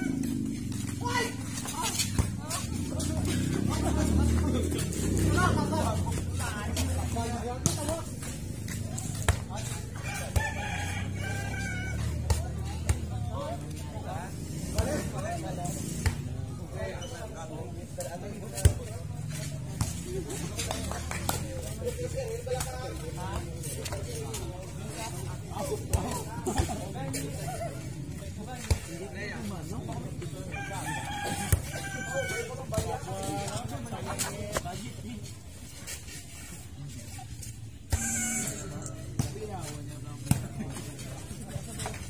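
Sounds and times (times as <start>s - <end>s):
people calling out and talking: 0.0s - 42.0s
rooster crowing: 10.0s - 12.2s, 30.5s - 32.6s, 38.0s - 39.0s.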